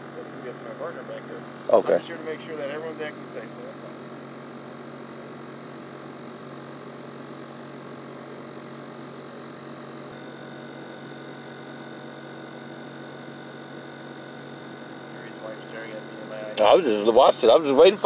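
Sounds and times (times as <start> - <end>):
steady hum in car cabin: 0.0 - 18.0.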